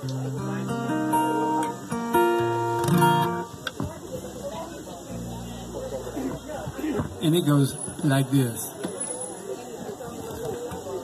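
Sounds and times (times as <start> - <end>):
acoustic guitar chords: 0.0 - 8.1.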